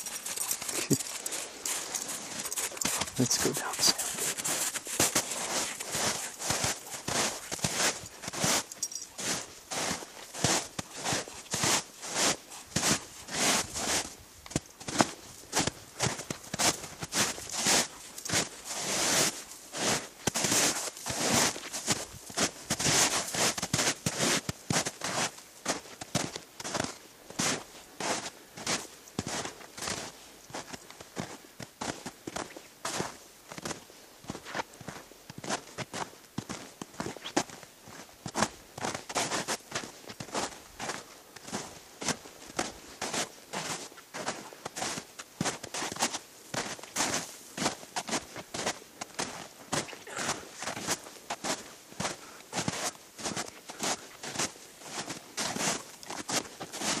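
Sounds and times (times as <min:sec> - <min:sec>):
footsteps crunching through snow: 0:00.0 - 0:57.0.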